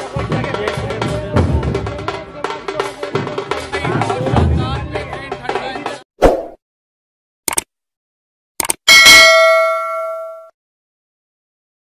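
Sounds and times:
quick double clicks: 0:07.5 - 0:07.7, 0:08.6 - 0:08.8
loud bell ding: 0:08.9 - 0:10.6.

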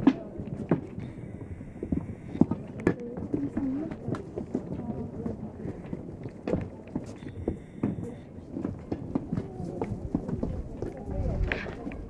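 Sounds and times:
faint person's voice: 0:00.0 - 0:12.0.

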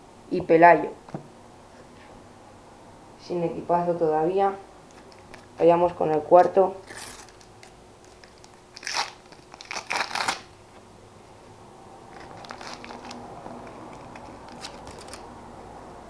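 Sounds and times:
card and wrapper rustling: 0:04.9 - 0:05.6, 0:06.8 - 0:10.5, 0:12.1 - 0:15.3
plastic packet crinkling: 0:04.9 - 0:05.6, 0:06.8 - 0:10.5, 0:12.1 - 0:15.3.

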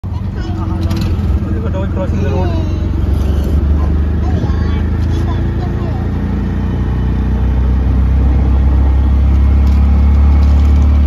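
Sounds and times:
auto-rickshaw engine rumbling: 0:00.0 - 0:11.0.

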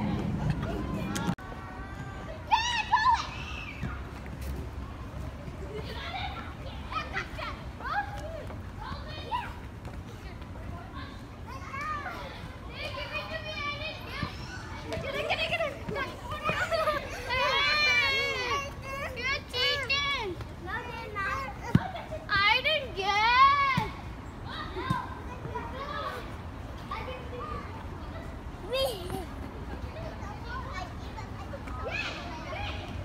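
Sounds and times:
young children calling and babbling: 0:00.0 - 0:04.2, 0:05.1 - 0:33.0.

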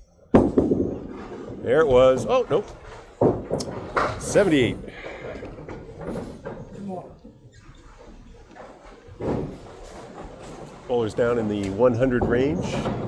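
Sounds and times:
bowling alley background: 0:00.0 - 0:13.0.

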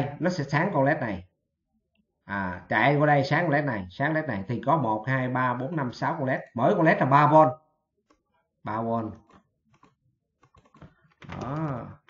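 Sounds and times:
keyboard keys clicking: 0:09.2 - 0:12.0.

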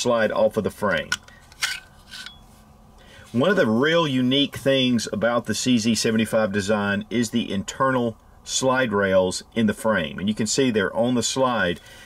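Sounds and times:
pistol slide scraping metal: 0:01.2 - 0:02.5.

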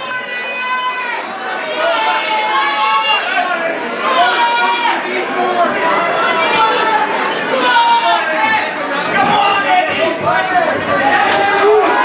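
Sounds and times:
spectators shouting and talking: 0:00.0 - 0:12.0.

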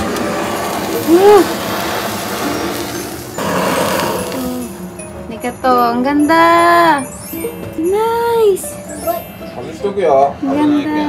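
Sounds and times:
kitchen torch flame hissing: 0:00.0 - 0:05.2.

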